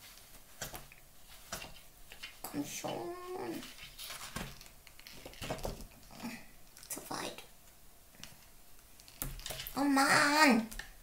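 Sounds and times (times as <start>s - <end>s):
book pages rustling: 0.0s - 6.1s.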